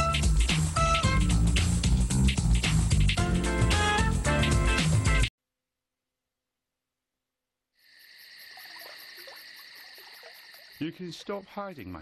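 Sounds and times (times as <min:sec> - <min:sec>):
frogs croaking: 0:07.8 - 0:12.0
insects chirring: 0:07.8 - 0:12.0.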